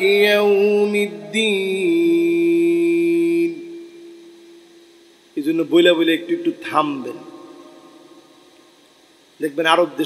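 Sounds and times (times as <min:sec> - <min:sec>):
echo through sound system: 0:00.0 - 0:10.0.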